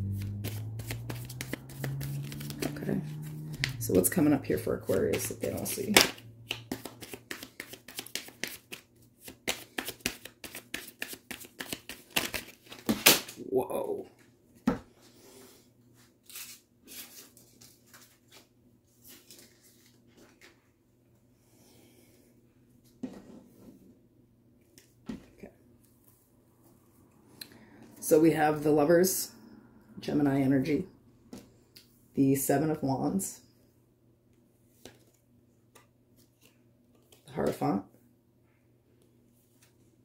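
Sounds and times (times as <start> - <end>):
cards being shuffled: 0.0 - 13.4, 16.2 - 20.6.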